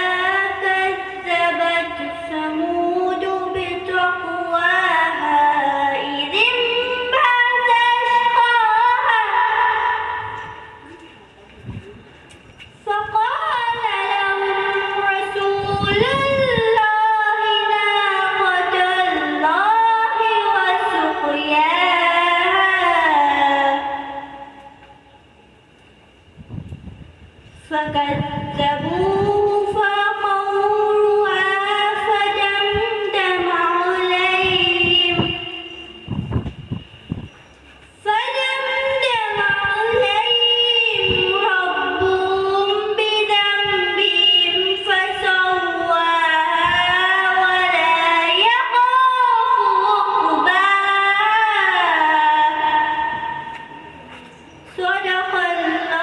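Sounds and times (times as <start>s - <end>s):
girl reciting melodically: 0.0s - 10.9s, 12.8s - 24.8s, 27.6s - 36.0s, 38.0s - 53.8s, 54.7s - 56.0s.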